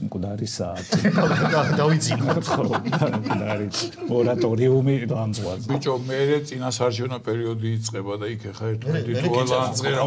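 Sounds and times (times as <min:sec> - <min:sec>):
men speaking: 0:00.0 - 0:10.0.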